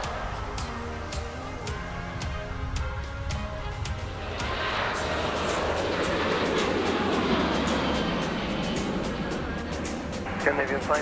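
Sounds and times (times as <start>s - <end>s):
jet engines roaring at takeoff: 0.0s - 11.0s
music: 0.0s - 11.0s.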